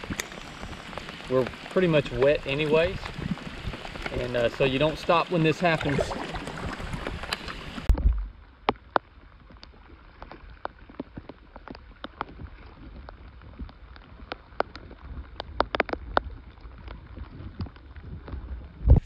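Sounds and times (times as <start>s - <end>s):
raindrops ticking on water and kayak: 0.0s - 19.0s
wind rumble on microphone: 0.0s - 19.0s.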